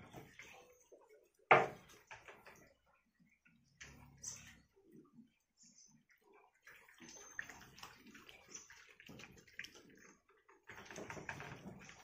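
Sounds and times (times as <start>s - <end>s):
puppies lapping food: 0.0s - 12.0s.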